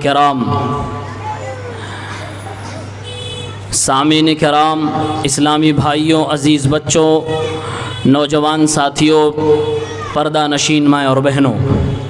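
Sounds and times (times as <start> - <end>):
man speaking through amplification: 0.0 - 1.3, 3.7 - 12.0
faint background voices: 0.7 - 3.8.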